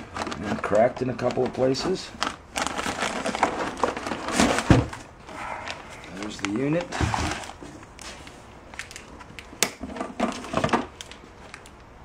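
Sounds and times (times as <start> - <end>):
plastic bag and foam rustling: 0.0 - 9.4.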